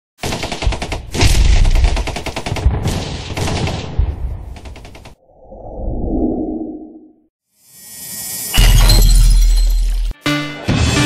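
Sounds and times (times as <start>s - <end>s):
rapid gunfire-like cracks: 0.2s - 5.2s.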